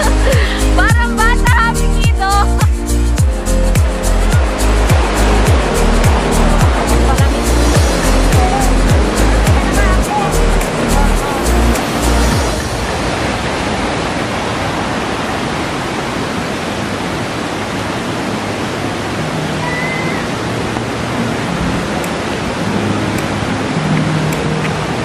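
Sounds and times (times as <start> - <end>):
river rapids rushing over boulders: 0.0 - 25.0.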